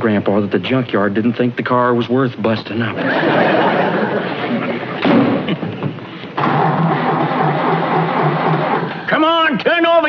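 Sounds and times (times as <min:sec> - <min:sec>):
dense noise: 0:00.0 - 0:09.6
car engine cranking: 0:06.3 - 0:09.1.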